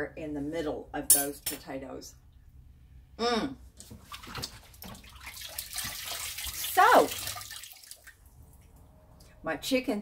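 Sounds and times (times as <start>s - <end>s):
faucet water running into sink: 4.4s - 8.2s.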